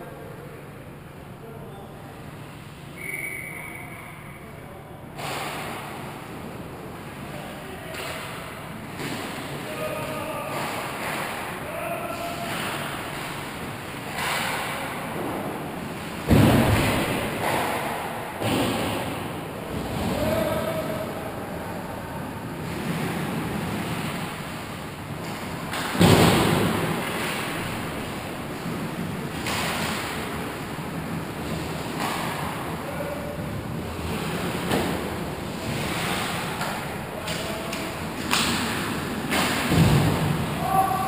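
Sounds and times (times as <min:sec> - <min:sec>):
stick hitting puck: 0:14.1 - 0:15.3
skates scraping ice: 0:33.4 - 0:40.9.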